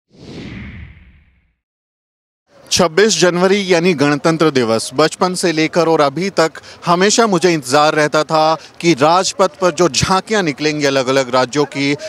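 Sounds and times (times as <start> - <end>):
whoosh sound effect: 0.1 - 1.6.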